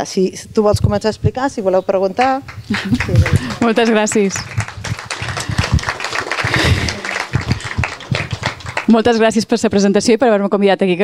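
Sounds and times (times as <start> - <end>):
audience applauding: 2.5 - 9.4.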